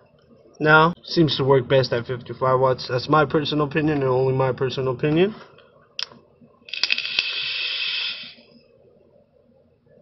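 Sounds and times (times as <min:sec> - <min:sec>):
vape draw airy hiss: 0:06.7 - 0:08.5
brief sharp hiss: 0:06.8 - 0:08.4.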